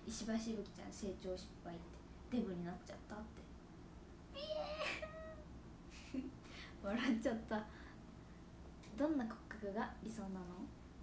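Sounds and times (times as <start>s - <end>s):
woman's high-pitched squealing laugh: 4.4s - 5.4s.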